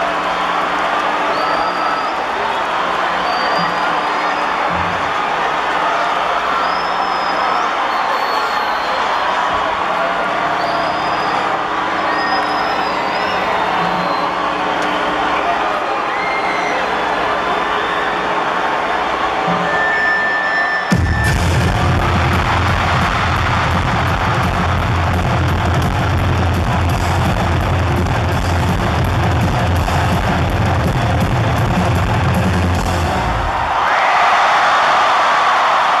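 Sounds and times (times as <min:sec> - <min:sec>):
crowd cheering: 0:00.0 - 0:36.0
crowd noise: 0:00.0 - 0:36.0
live rock band playing: 0:20.9 - 0:33.3.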